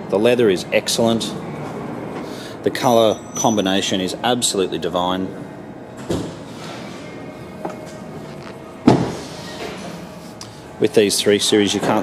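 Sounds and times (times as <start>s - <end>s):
car door thud: 8.8s - 9.2s.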